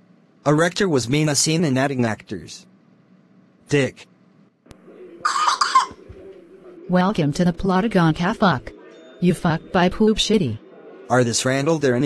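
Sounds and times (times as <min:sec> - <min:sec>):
faint steady hum: 0:00.0 - 0:12.0
man coughing: 0:05.3 - 0:06.0.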